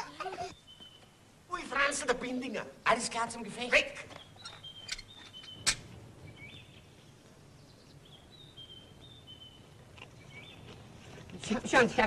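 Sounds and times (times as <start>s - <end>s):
low background hiss: 0.0s - 12.0s
small bird chirping: 0.5s - 1.2s, 4.1s - 11.0s.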